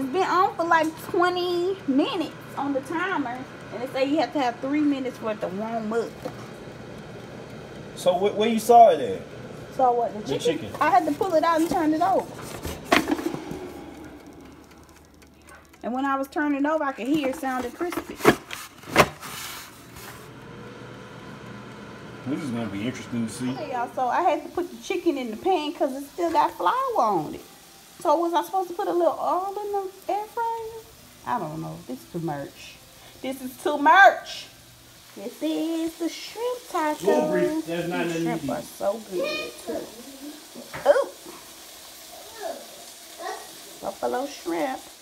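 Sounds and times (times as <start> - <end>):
fan humming: 0.0 - 45.0
air fryer basket clacking: 10.4 - 19.2.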